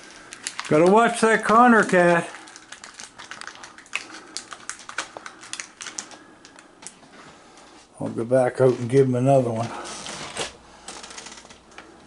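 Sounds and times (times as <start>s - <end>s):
packaging clicks and crinkles: 0.0s - 7.7s.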